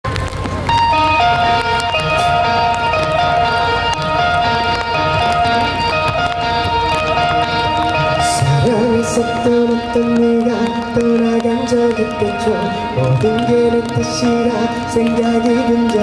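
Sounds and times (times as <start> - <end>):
live rock band playing: 0.1 - 16.0.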